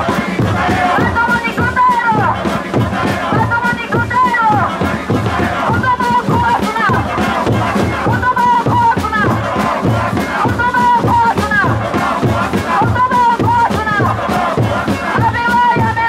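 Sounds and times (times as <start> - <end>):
crowd chanting: 0.0 - 16.0
drums beating: 0.0 - 16.0
woman chanting into a microphone: 0.0 - 16.0.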